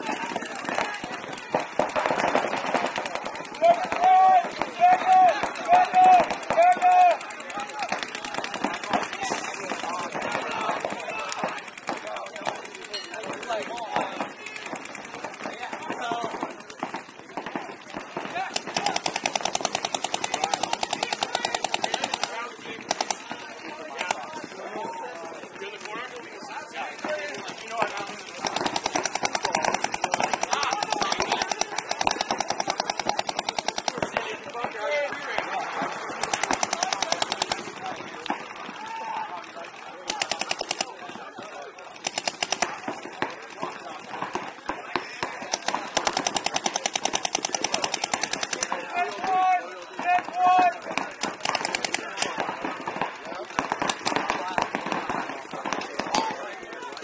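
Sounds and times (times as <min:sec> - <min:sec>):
paintball markers firing: 0:00.0 - 0:57.0.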